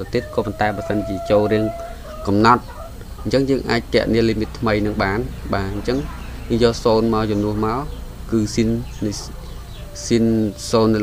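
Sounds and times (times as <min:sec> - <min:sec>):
man speaking: 0:00.0 - 0:02.6, 0:03.2 - 0:09.3, 0:10.0 - 0:11.0
steady pitched call: 0:00.0 - 0:11.0.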